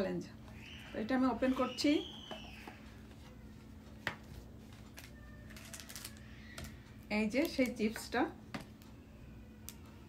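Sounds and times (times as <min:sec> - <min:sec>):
light clicks of foil packet: 0:04.8 - 0:07.8.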